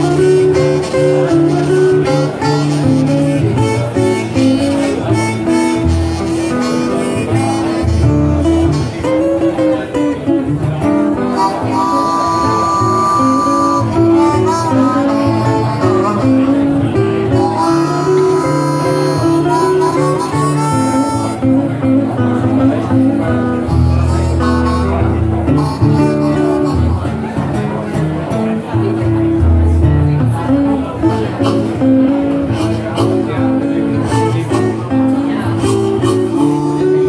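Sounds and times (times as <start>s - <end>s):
acoustic guitar accompaniment: 0.0s - 37.0s
harmonica bending notes: 0.0s - 37.0s.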